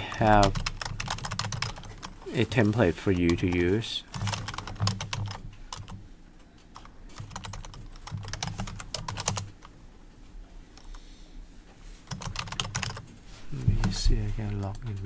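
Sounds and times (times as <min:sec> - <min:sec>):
typing on computer keyboard: 0:00.1 - 0:06.0, 0:06.6 - 0:09.7, 0:12.1 - 0:13.1.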